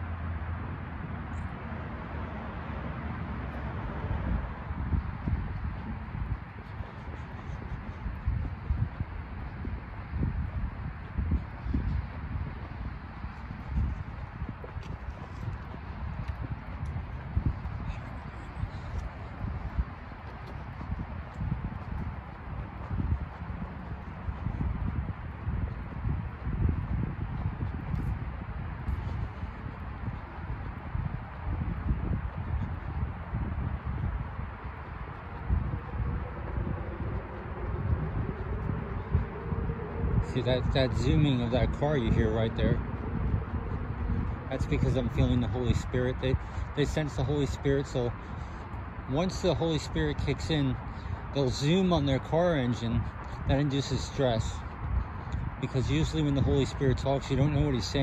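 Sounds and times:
footsteps on sidewalk: 0.0 - 58.0
wind and handling thuds on microphone: 3.5 - 49.1, 52.2 - 58.0.

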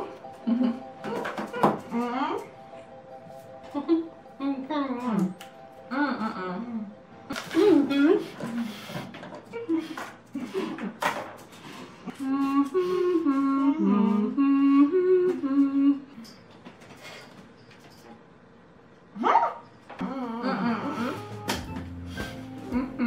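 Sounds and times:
women humming muffled: 3.6 - 8.9, 12.1 - 16.3, 20.0 - 21.5, 22.5 - 23.0.

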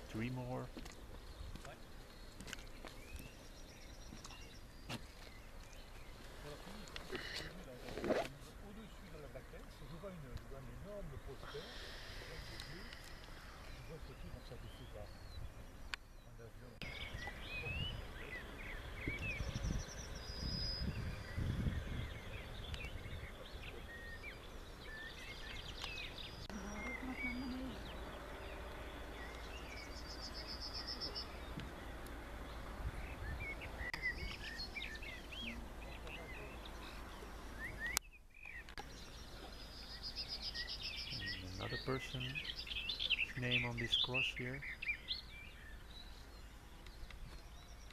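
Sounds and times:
birds chirping and trilling: 0.0 - 47.9
wind rumble on microphone: 16.9 - 24.1, 31.5 - 34.9.

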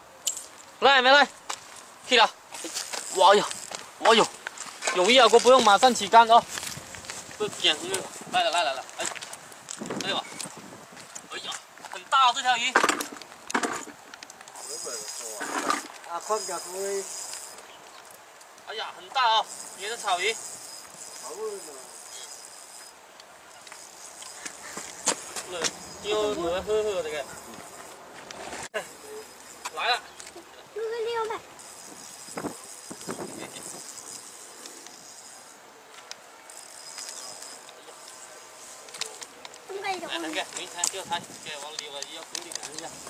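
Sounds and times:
fishing reel drag buzzing: 2.0 - 11.1, 14.5 - 17.6, 18.9 - 28.0, 28.8 - 43.0.

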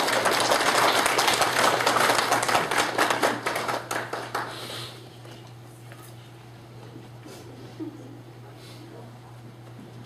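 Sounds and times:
people applauding: 0.0 - 4.6.

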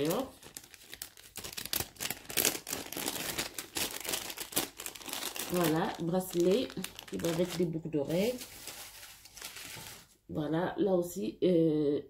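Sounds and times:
plastic bag crinkling: 0.0 - 10.2.

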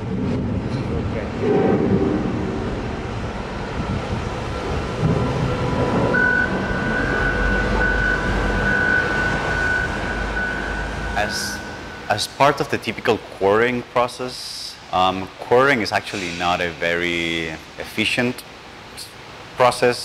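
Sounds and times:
machinery low noise: 0.0 - 18.3
high machinery whine: 1.2 - 13.3.

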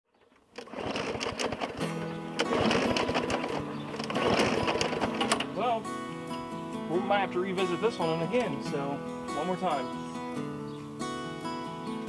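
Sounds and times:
lawn mower engine running: 0.1 - 12.0
music: 1.7 - 12.0.

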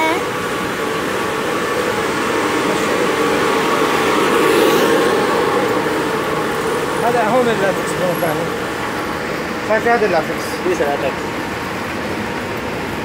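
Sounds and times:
machinery humming: 0.0 - 13.0.

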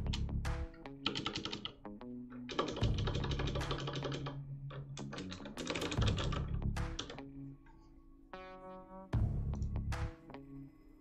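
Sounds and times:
fast typing on keyboard: 1.0 - 1.8, 2.5 - 4.4, 5.0 - 7.2.

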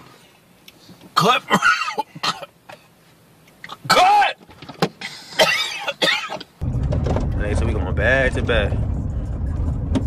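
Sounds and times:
man coughing: 1.2 - 2.9, 3.7 - 4.3, 5.0 - 6.5.

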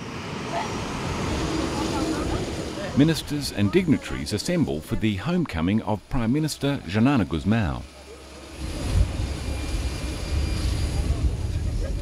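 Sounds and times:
jet engines running: 0.0 - 12.0.

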